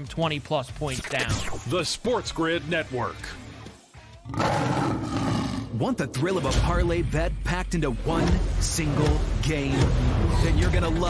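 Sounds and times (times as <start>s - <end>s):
lion roaring: 4.3s - 5.9s.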